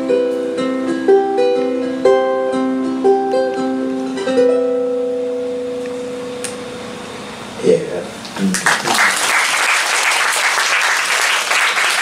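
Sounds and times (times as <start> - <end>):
ukulele plucked notes: 0.0 - 6.7.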